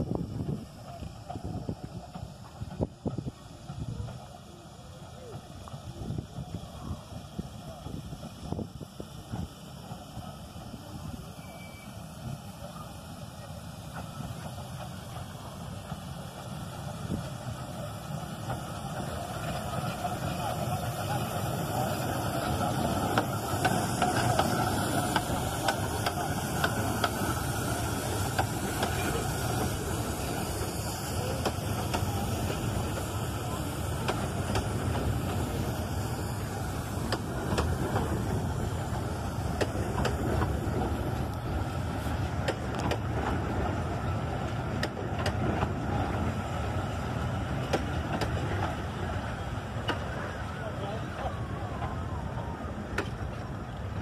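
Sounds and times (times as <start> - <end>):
rail-joint clicks: 0.0 - 53.9
train wheels rumbling on rail: 0.0 - 54.0.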